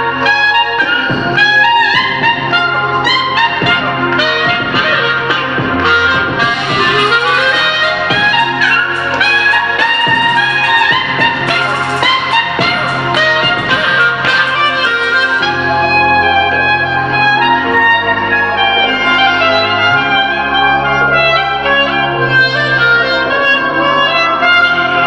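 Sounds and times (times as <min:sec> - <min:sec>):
clarinet melody: 0:00.0 - 0:25.0
trap backing track with deep bass: 0:00.0 - 0:25.0.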